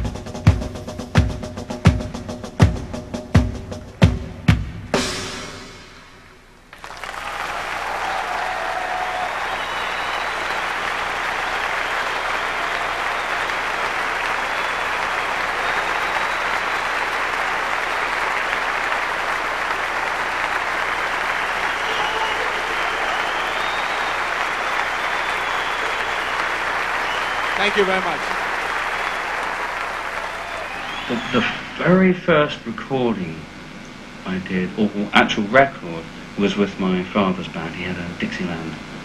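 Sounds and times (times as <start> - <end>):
drum and percussion solo: 0.0 - 6.2
audience applause: 6.7 - 32.0
people cheering: 6.7 - 33.1.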